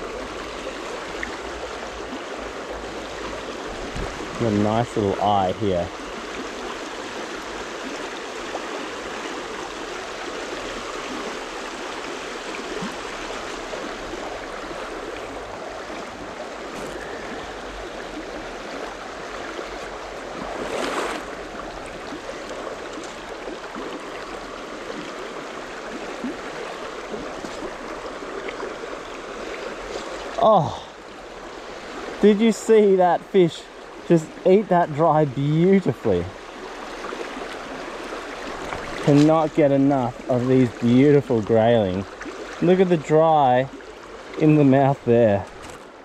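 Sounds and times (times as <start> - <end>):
stream flowing over stones: 0.0 - 46.0
water swish: 0.0 - 46.0.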